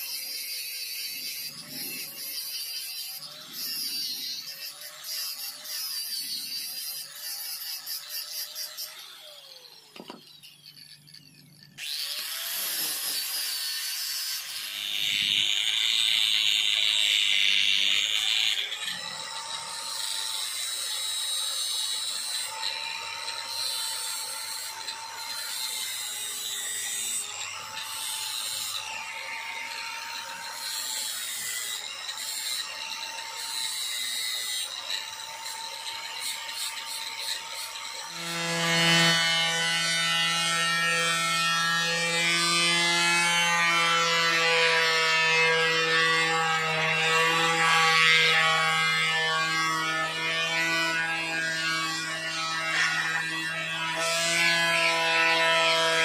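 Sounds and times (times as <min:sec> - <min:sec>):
angle grinder sanding wood: 0:00.0 - 0:56.0.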